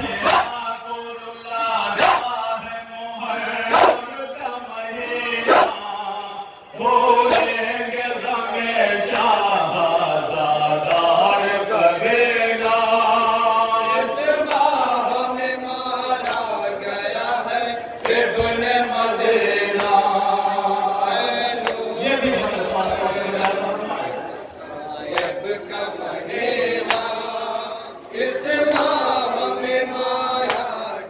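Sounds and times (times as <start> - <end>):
male voices chanting a lament: 0.0 - 31.0
hands slapping chests: 0.2 - 0.6, 2.0 - 2.3, 3.7 - 4.0, 7.3 - 7.6, 26.8 - 27.1, 30.4 - 30.8.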